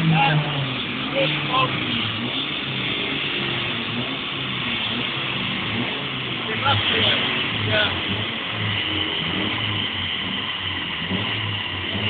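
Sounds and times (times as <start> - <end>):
car running on a dyno: 0.0 - 12.0.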